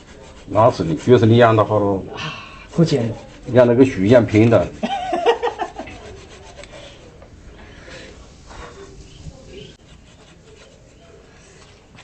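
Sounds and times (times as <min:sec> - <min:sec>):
wood and wire rubbing: 0:00.0 - 0:12.0.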